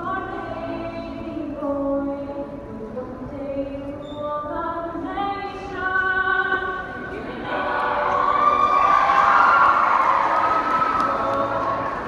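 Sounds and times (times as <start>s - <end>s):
choir singing chords: 6.9s - 12.0s
crowd cheering and shouting: 7.7s - 12.0s.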